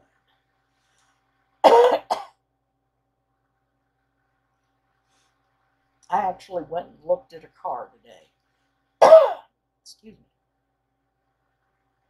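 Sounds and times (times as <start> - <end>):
woman coughing: 1.7 - 2.3, 9.0 - 9.5.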